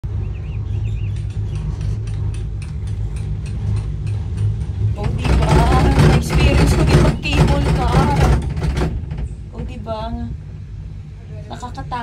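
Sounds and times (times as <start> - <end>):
cable car gondola moving: 0.0 - 12.0
wind rumble: 0.0 - 12.0.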